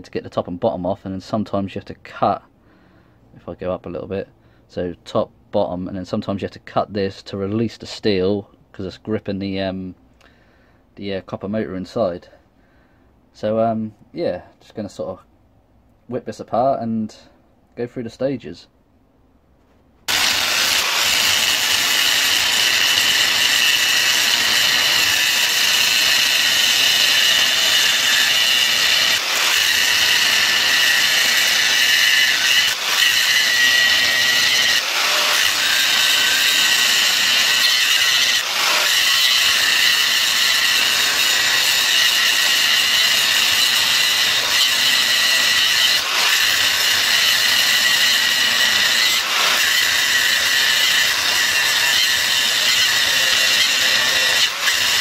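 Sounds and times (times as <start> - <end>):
angle grinder cutting steel: 20.1 - 55.0.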